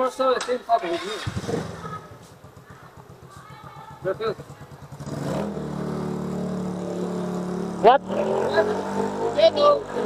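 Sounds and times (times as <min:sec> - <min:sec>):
vehicle engine humming: 0:00.9 - 0:10.0.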